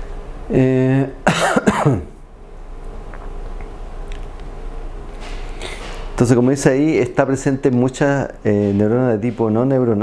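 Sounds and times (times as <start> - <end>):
person coughing: 1.2 - 2.2.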